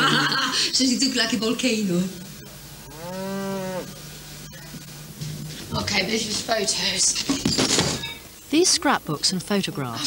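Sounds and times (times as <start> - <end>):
cow mooing: 2.8 - 4.0.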